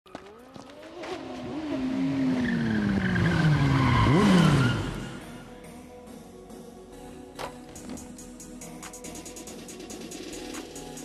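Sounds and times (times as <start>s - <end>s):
motorcycle engine revving: 0.1s - 5.5s.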